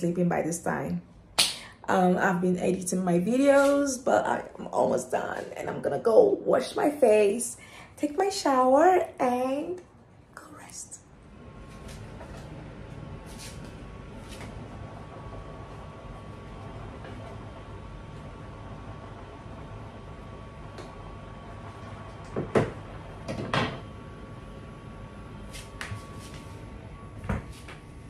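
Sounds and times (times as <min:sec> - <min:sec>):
low steady hum: 0:00.0 - 0:28.0
woman whispering: 0:10.3 - 0:11.1.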